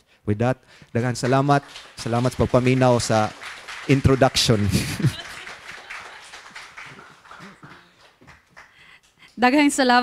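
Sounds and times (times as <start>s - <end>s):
audience applause: 1.0s - 8.9s.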